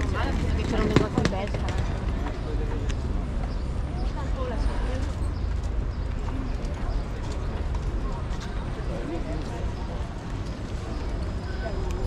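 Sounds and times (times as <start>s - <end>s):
footsteps on pavement: 0.0s - 11.1s
passers-by talking: 0.0s - 12.0s.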